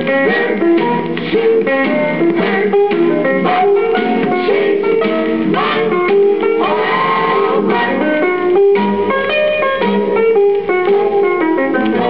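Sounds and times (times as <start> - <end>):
instrumental pop band music: 0.0 - 12.0.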